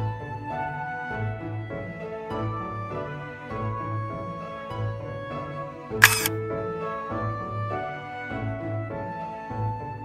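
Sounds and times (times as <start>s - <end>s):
camera shutter click: 6.0s - 6.3s.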